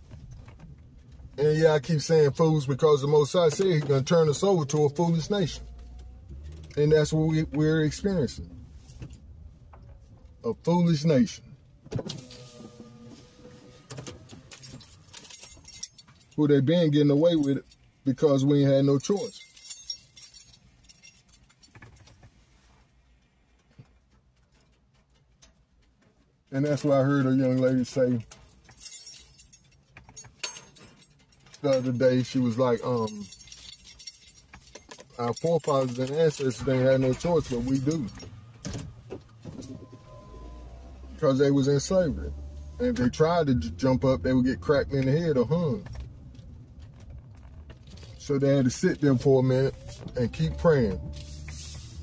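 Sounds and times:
faint small clicks and rattles: 19.1s - 39.4s
low steady hum: 27.7s - 52.0s.

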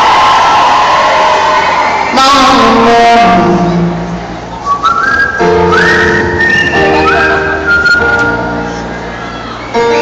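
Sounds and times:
live pop concert music: 0.0s - 10.0s
piano chords: 2.7s - 10.0s.

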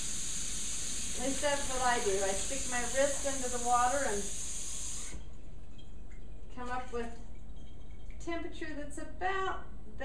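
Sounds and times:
water running from tap: 0.0s - 5.3s.

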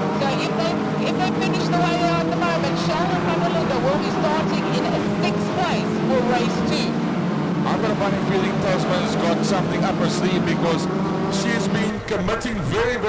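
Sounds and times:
race car engines droning: 0.0s - 13.0s.

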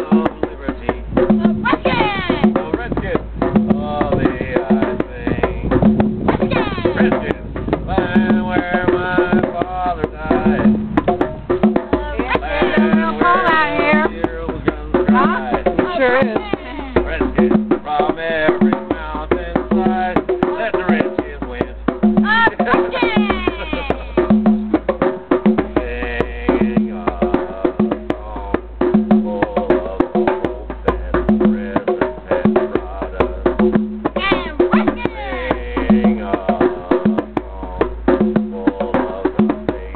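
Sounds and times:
hand drums playing: 0.0s - 39.9s.

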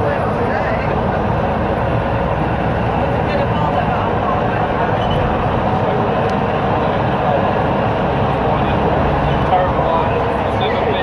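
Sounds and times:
bus diesel engine running: 0.0s - 11.0s
road noise: 0.0s - 11.0s.

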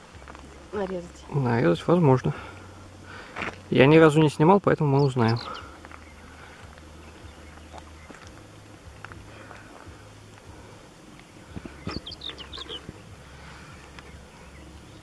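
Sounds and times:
low steady rumble: 0.0s - 15.0s
high quick bird chirps: 11.7s - 13.0s.

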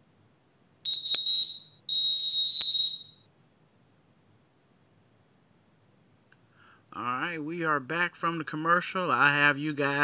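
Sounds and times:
high-pitched whistle blasts: 0.8s - 3.3s.

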